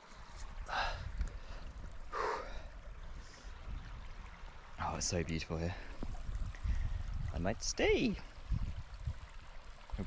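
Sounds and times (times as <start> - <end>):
stream running over rocks: 0.0 - 10.0
wind rumble on microphone: 2.7 - 10.0.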